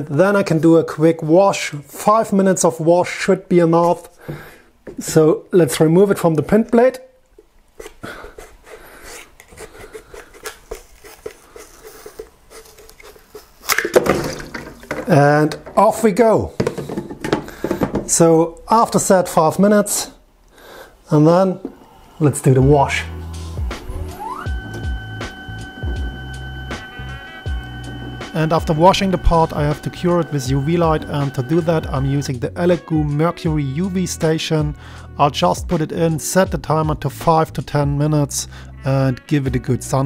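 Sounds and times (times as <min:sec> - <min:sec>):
motor whine: 0:21.5 - 0:32.2
background music with steady beat: 0:21.7 - 0:40.0.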